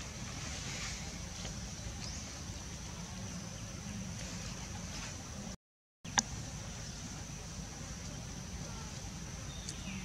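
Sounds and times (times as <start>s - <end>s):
thin steady high whine: 0.0s - 10.0s.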